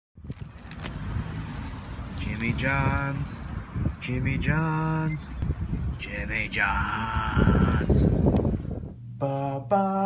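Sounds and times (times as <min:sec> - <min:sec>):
low outdoor rumble: 0:00.2 - 0:10.0.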